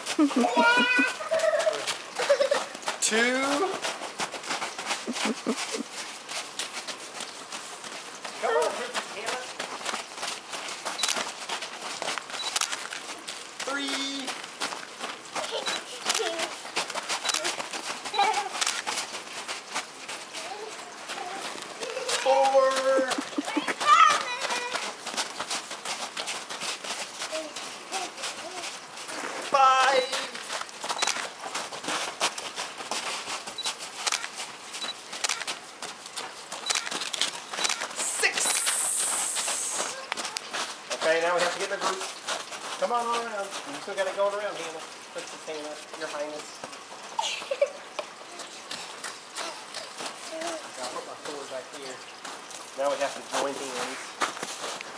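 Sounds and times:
running footsteps on snow: 0.0s - 54.9s
children shouting and laughing: 0.1s - 2.8s, 15.4s - 18.7s, 20.4s - 25.2s.

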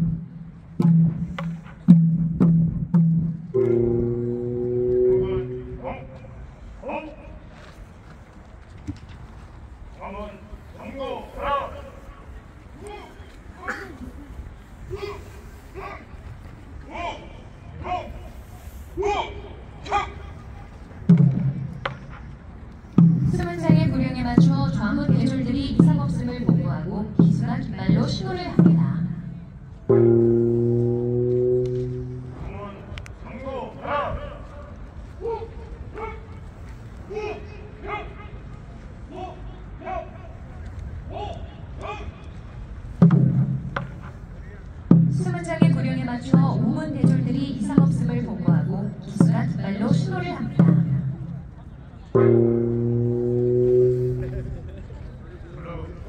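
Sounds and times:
ceremonial drum beats: 0.0s - 5.9s, 20.9s - 32.9s, 42.9s - 54.7s
held musical tones: 3.5s - 6.2s, 23.2s - 33.0s, 52.1s - 55.0s
people's voices: 3.6s - 8.8s, 9.6s - 42.6s, 43.8s - 56.0s.

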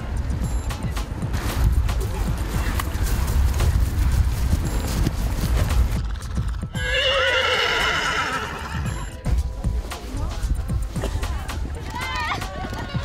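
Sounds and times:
hooves thudding on turf: 0.5s - 8.0s
horse neighing: 6.0s - 9.1s.

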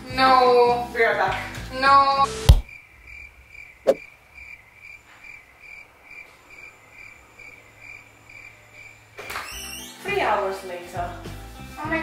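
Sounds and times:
cricket chirping: 2.6s - 9.2s.

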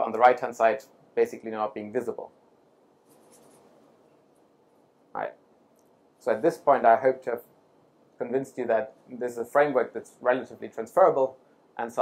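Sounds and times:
faint rustle: 3.0s - 4.4s.

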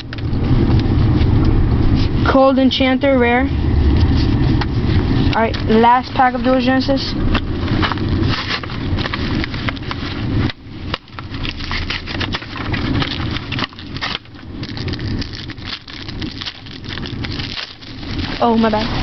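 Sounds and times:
foil packaging crinkling and tearing: 7.4s - 19.0s.

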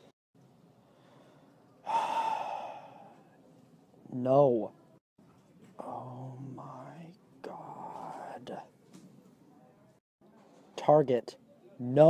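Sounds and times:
man sighing loudly: 1.8s - 3.1s.

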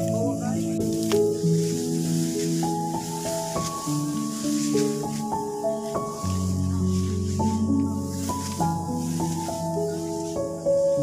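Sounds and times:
instrumental music with held notes: 0.0s - 11.0s.

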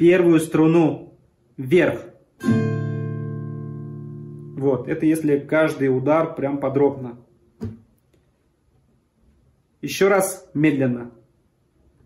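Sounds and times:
classical guitar chord strum: 2.4s - 5.8s.

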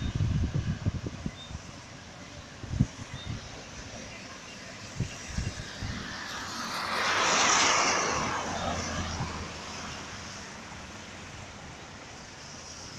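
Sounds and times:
low road rumble: 0.0s - 12.9s
tyre spray on wet road: 4.6s - 12.9s.

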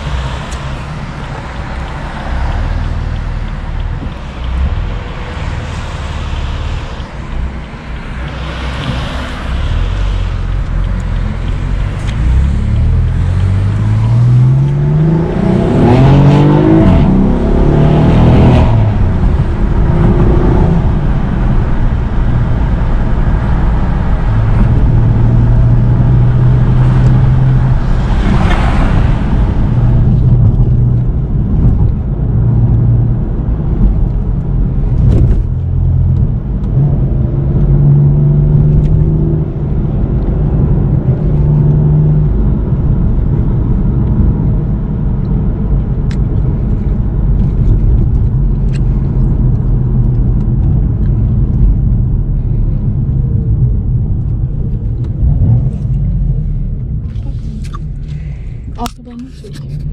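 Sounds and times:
car engine from inside cabin: 0.0s - 59.9s.

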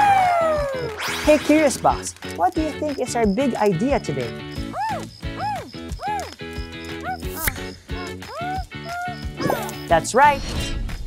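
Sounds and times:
light background music: 0.0s - 11.0s
cartoon character chattering calls: 6.9s - 9.8s.

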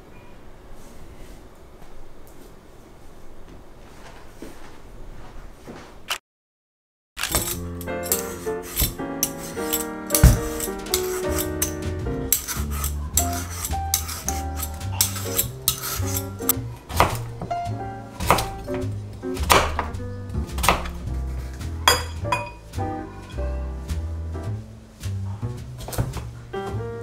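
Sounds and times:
vegetable peeler scraping squash: 7.2s - 17.2s
background music: 7.2s - 27.0s.

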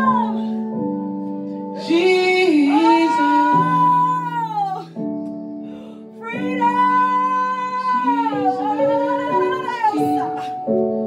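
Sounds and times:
woman singing high note: 6.3s - 10.6s.

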